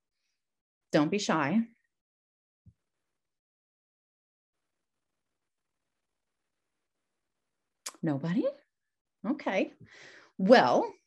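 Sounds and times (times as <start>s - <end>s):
woman speaking: 1.0s - 1.8s, 7.9s - 8.6s, 9.2s - 9.8s, 10.4s - 11.0s.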